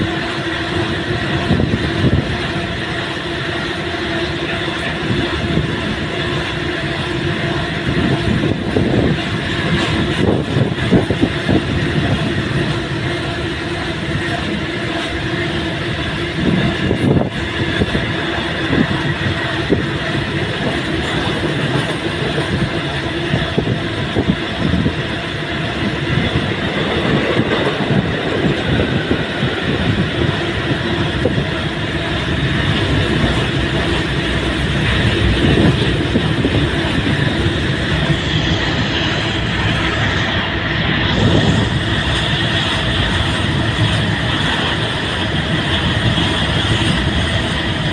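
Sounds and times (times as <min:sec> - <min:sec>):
freight train rolling past: 0:00.0 - 0:47.9
wheels clattering on rails: 0:00.0 - 0:47.9.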